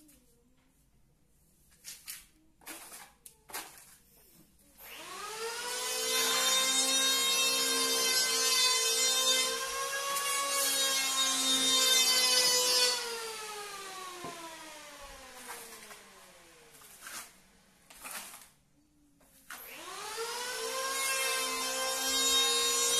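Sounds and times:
power tool motor whining: 4.8 - 17.3, 19.6 - 22.9.

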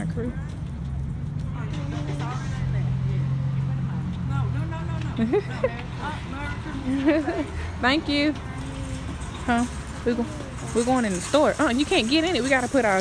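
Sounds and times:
vehicle engine hum: 0.0 - 13.0
people talking: 1.6 - 13.0.

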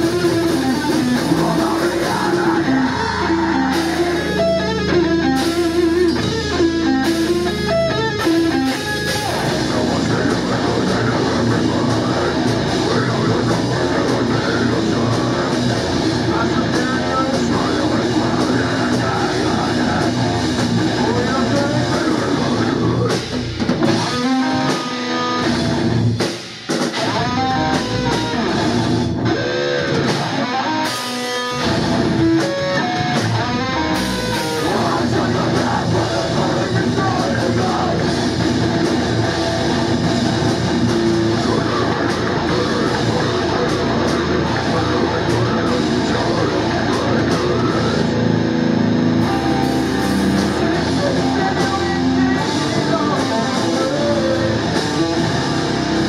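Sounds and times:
picked electric guitar notes: 0.0 - 26.2, 26.9 - 56.0
heavy metal band playing: 0.0 - 56.0.

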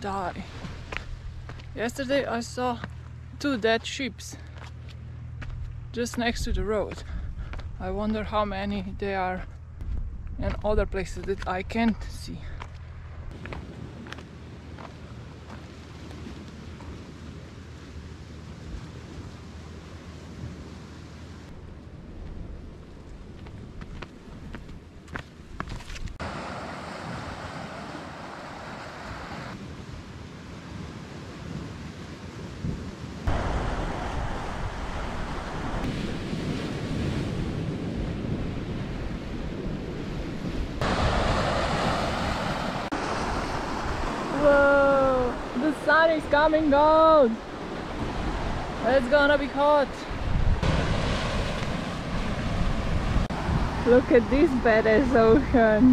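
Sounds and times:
waves on a rocky shore: 0.0 - 4.6, 26.2 - 55.9
wind rumbling on microphone: 4.9 - 55.9.

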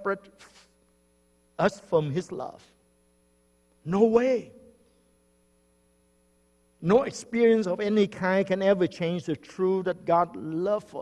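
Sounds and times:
man speaking: 1.6 - 2.7, 3.8 - 4.7, 6.8 - 11.0.

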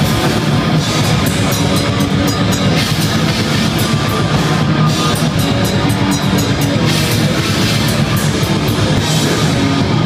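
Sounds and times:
distorted electric guitars: 0.0 - 10.0
drum kit with cymbals: 0.0 - 10.0.

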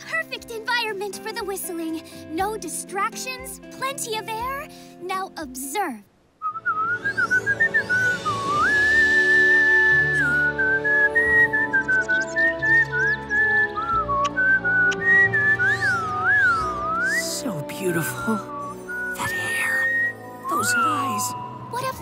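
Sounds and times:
soft background music: 0.0 - 22.0
person whistling a melody: 6.4 - 21.6.

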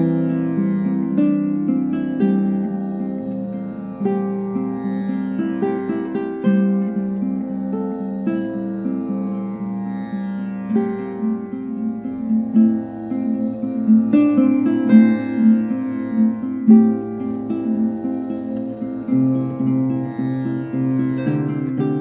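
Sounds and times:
plucked harp notes: 0.0 - 9.9, 10.7 - 22.0
tambura drone: 0.0 - 22.0.

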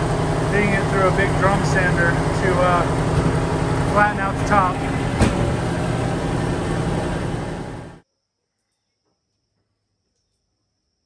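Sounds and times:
drum sander running: 0.0 - 8.0.

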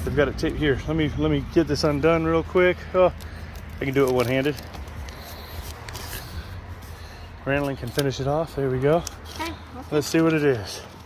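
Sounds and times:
tape tearing off cardboard: 3.2 - 8.2.

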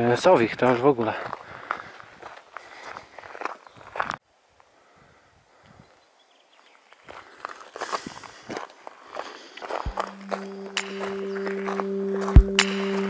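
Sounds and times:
footsteps crunching on trail: 0.6 - 4.7, 5.8 - 13.0
heavy low hits: 9.9 - 13.0
music with low held tones: 9.9 - 13.0.

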